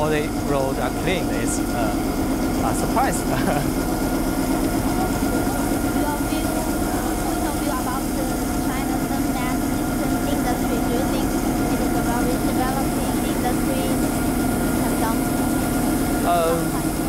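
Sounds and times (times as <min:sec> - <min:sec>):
street sweeper mechanical hum: 0:00.0 - 0:17.0.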